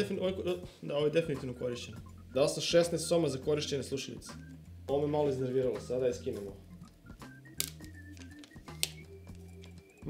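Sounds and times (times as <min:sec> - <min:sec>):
quiet background music: 0:00.0 - 0:10.0
plastic headset clicks: 0:06.8 - 0:09.8.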